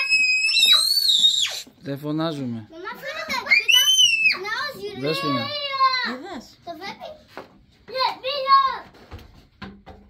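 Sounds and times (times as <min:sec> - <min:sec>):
young child shrieking: 0:00.0 - 0:01.7, 0:03.5 - 0:04.4.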